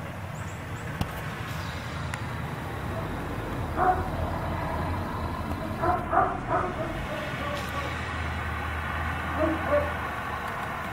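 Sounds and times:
dog barking: 3.8 - 4.2, 5.6 - 7.8, 9.3 - 10.0.

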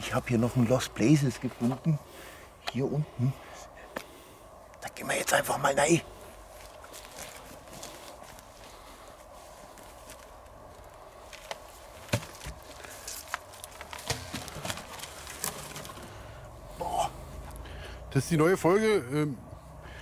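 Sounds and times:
footsteps on dry grass: 6.4 - 15.9.

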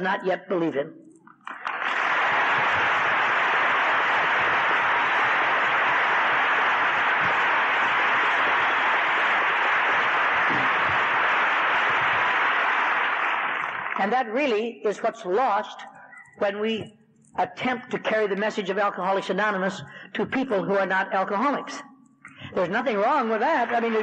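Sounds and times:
audience applauding: 1.4 - 14.1.

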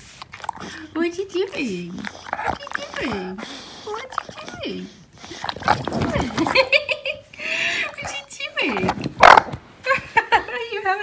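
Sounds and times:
dog snorting: 0.0 - 6.7, 7.8 - 9.6
dog snuffling: 0.0 - 6.7
dog grumbling: 0.4 - 6.7.

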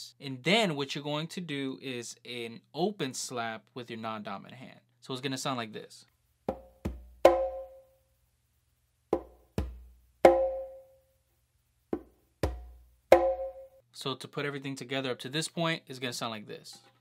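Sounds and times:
conga played by hand: 6.5 - 7.8, 9.1 - 10.9, 12.0 - 13.7.

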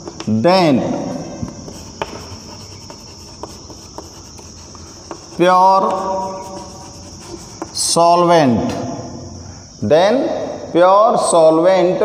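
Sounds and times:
chalk scratching on blackboard: 1.4 - 8.1.

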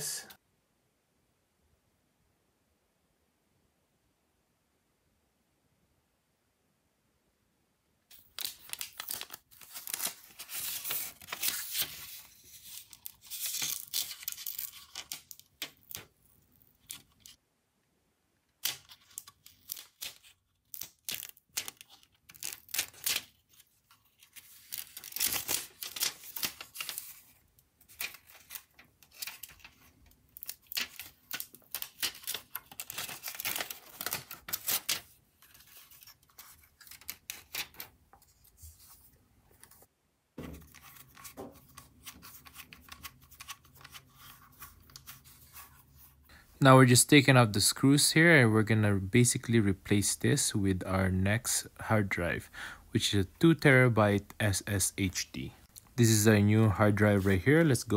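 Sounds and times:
plastic wrap crinkling and tearing: 8.1 - 17.4, 18.6 - 37.9.

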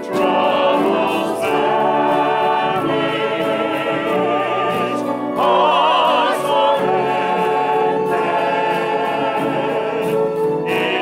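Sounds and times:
choir singing gospel song: 0.0 - 11.0.

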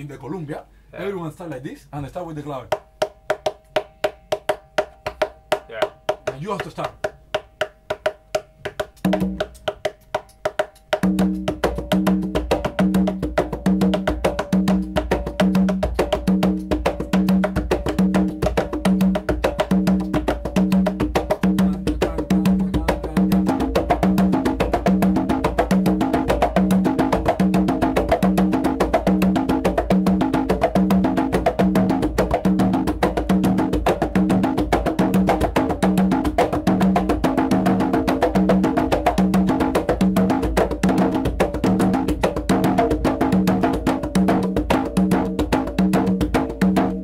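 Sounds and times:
conga drums played by hand: 2.4 - 47.0.

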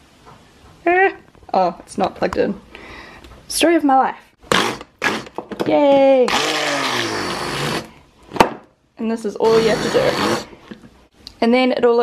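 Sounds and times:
stick blender motor: 6.3 - 7.9, 9.4 - 10.5.

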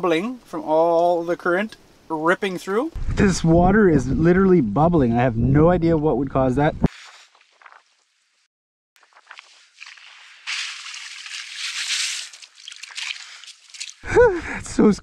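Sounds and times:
water fizzing and sloshing: 9.0 - 14.1.

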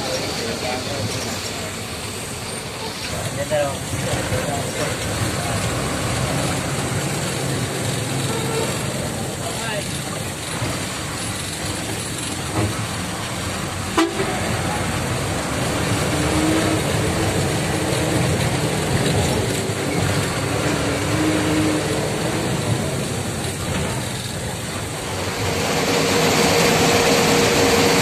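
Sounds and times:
bus engine and road noise: 0.0 - 28.0
vehicle horns honking: 8.2 - 8.8, 14.0 - 14.4.

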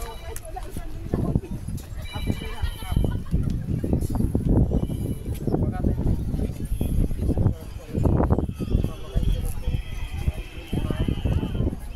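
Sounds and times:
footsteps on stone steps: 0.0 - 7.5
people talking: 0.0 - 11.9.

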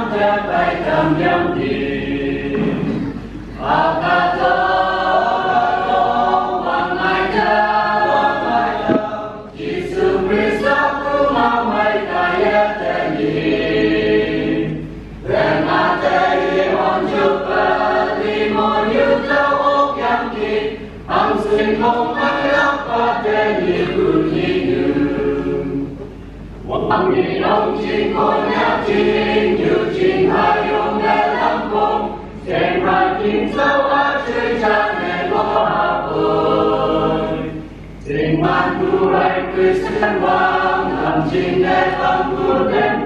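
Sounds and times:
mixed choir singing a hymn: 0.0 - 43.0.

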